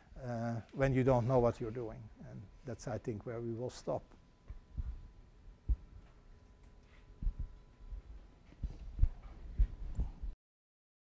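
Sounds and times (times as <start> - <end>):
dull low knocks: 4.5 - 5.9, 7.2 - 8.1.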